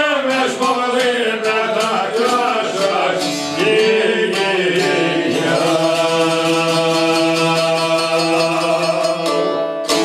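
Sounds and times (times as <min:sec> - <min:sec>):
person singing: 0:00.0 - 0:10.0
plucked lutes: 0:00.0 - 0:10.0.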